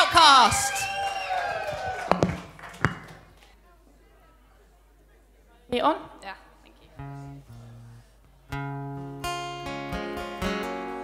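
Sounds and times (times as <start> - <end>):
sharp knocks: 2.1 - 3.2.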